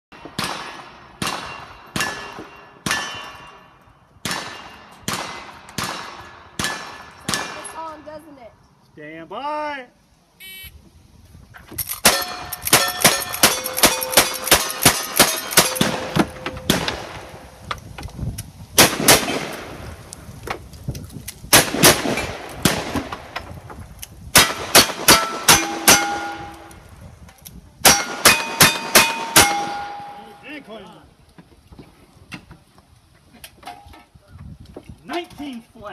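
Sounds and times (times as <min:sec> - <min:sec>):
gunshots: 0:00.3 - 0:03.5, 0:04.2 - 0:07.8, 0:12.0 - 0:17.4, 0:18.8 - 0:19.8, 0:21.5 - 0:23.4, 0:24.4 - 0:26.5
short electronic beep: 0:10.4 - 0:10.8
steel targets clanging: 0:11.8 - 0:17.0, 0:24.4 - 0:26.7, 0:27.8 - 0:30.6.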